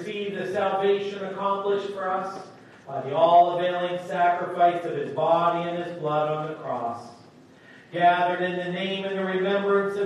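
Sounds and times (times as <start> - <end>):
man chanting a prayer: 0.0 - 7.2, 7.9 - 10.0.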